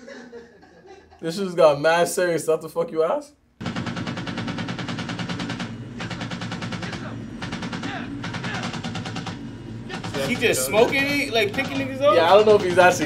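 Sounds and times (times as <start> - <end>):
helicopter hum: 3.6 - 13.0
machine gun firing bursts: 3.6 - 13.0.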